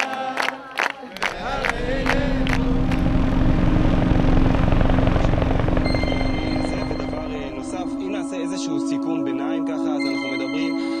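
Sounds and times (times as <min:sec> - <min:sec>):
helicopter rotors beating: 0:01.2 - 0:08.4
helicopter engine drone: 0:01.3 - 0:08.4.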